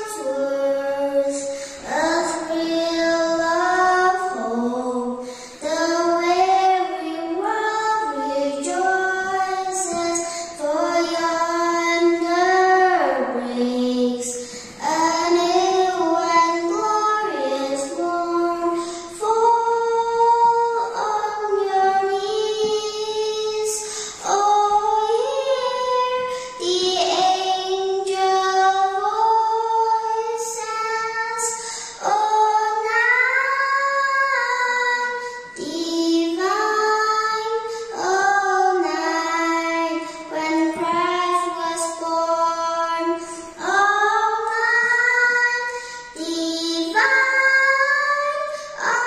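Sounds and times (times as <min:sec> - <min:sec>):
girl singing into a microphone: 0:00.0 - 0:49.0.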